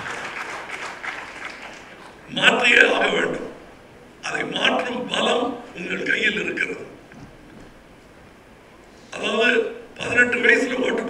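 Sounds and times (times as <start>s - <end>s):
audience applauding: 0.0s - 3.2s.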